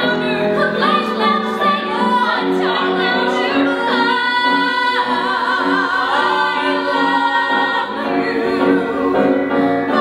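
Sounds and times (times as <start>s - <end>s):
voices singing in harmony: 0.0s - 10.0s.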